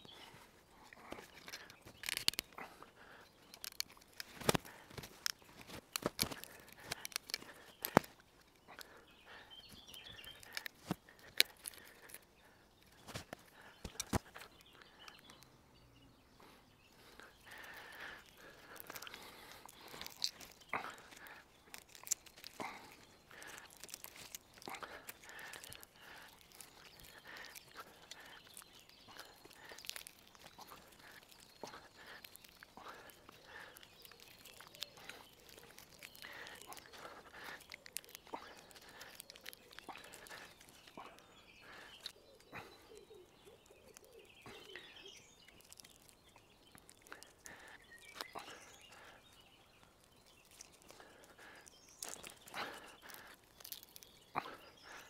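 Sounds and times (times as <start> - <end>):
wood fibres cracking and snapping: 0.0 - 15.5, 16.9 - 55.0
leaves rustling: 17.0 - 42.2.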